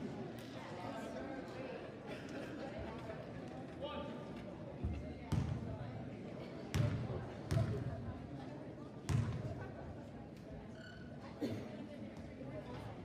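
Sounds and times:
murmur of voices: 0.0s - 13.0s.

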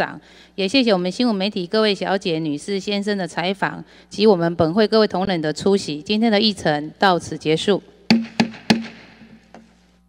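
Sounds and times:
wooden gavel knocks: 8.1s - 9.7s.

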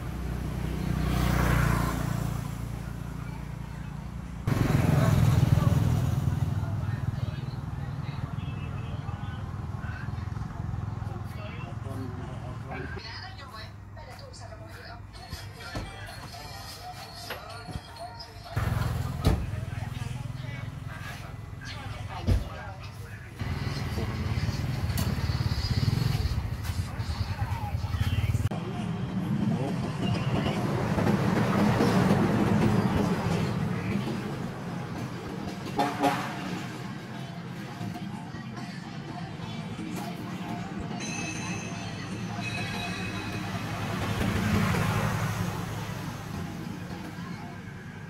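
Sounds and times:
vehicle passing close by: 0.0s - 7.8s, 43.4s - 47.0s
small engine running: 23.4s - 26.6s.

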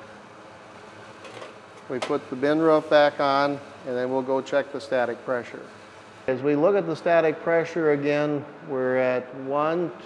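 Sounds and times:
blower fan humming: 0.0s - 10.0s.

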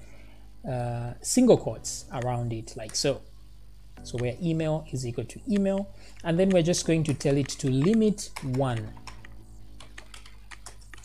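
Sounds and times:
steady low hum: 0.0s - 11.0s
keyboard typing clicks: 5.5s - 11.0s.

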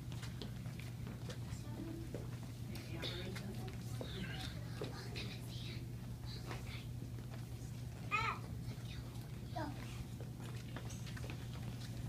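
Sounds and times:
shoes shuffling and tapping on floor: 0.0s - 5.3s, 6.4s - 12.0s
steady low hum: 0.0s - 12.0s.

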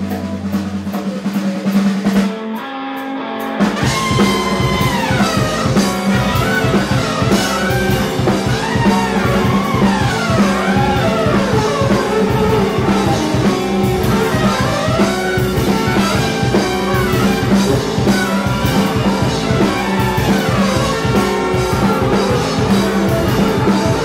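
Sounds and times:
rock band playing live: 0.0s - 24.0s.

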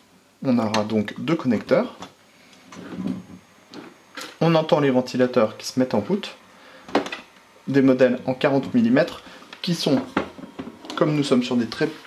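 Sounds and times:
faint high whine: 0.0s - 12.0s
small cooling fans running: 0.0s - 12.0s.

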